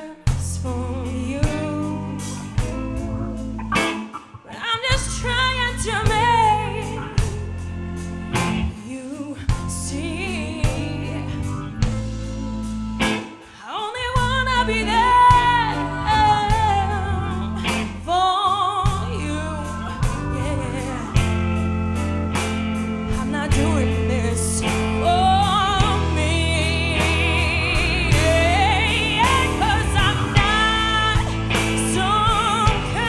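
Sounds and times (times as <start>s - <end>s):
woman singing with vibrato: 0.0s - 22.2s, 23.0s - 33.0s
drum kit: 0.0s - 33.0s
electric bass: 0.0s - 33.0s
electric guitar: 0.0s - 33.0s.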